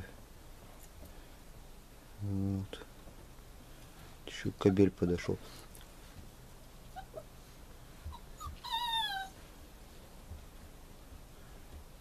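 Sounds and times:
puppy whimpering and yelping: 6.8s - 7.4s, 8.0s - 9.5s.

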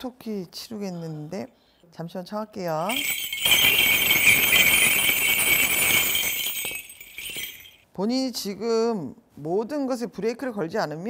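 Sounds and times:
cluster of small bells jingling: 2.8s - 7.8s.

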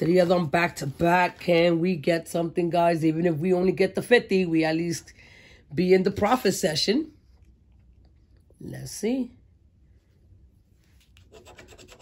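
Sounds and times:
lottery ticket being scratched: 11.2s - 12.0s.

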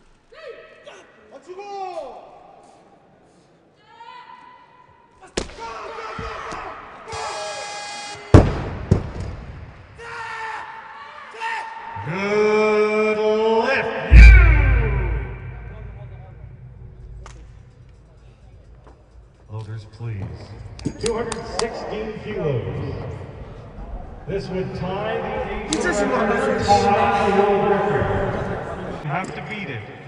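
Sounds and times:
loud drawn-out shout: 13.8s - 16.6s.

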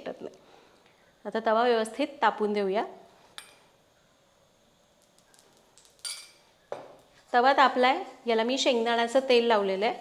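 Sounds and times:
kitchen utensils clinking: 6.0s - 6.4s.

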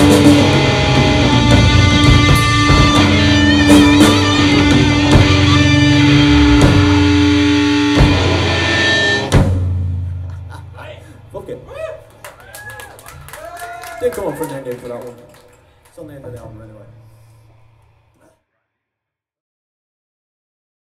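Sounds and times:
metal band playing live: 0.0s - 9.9s
audience shouting and cheering: 11.8s - 15.0s.

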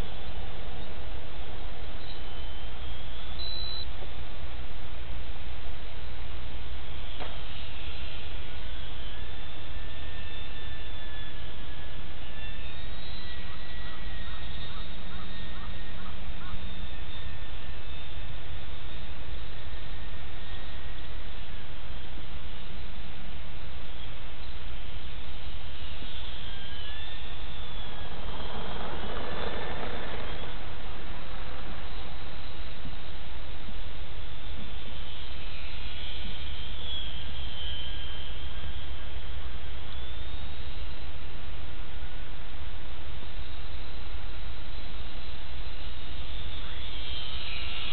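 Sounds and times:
distant electric motor whine: 0.0s - 47.9s
bird calls: 12.4s - 18.3s
steady rushing background: 13.4s - 47.9s
wind noise on microphone: 17.3s - 47.9s.

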